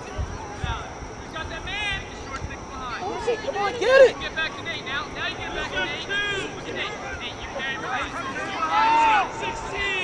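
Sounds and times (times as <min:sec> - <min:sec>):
distant voices shouting: 0:00.0 - 0:10.0.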